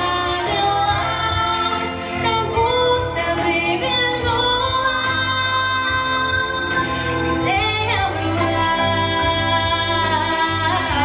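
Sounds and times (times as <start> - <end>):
accompanying music: 0.0 - 11.0
woman singing into microphone: 0.0 - 11.0.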